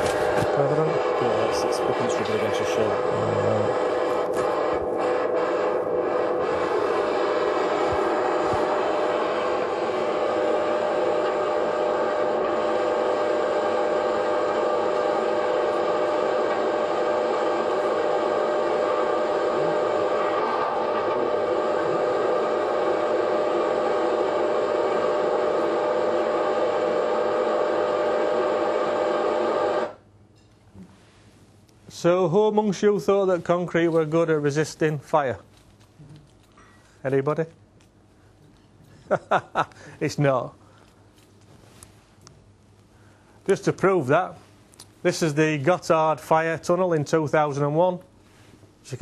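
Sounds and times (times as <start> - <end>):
noisy roar over loudspeakers: 0.0 - 30.0
steady hum: 0.0 - 49.0.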